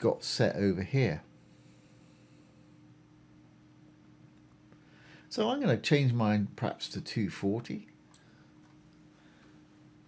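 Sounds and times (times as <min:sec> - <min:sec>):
faint electrical hum: 0:00.0 - 0:10.0
microphone hiss: 0:00.0 - 0:10.0.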